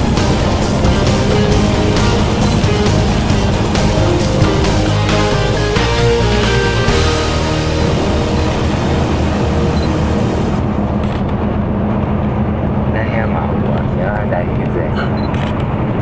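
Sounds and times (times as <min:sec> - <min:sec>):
wind and road noise on microphone: 0:08.5 - 0:16.0
person speaking: 0:13.0 - 0:15.2.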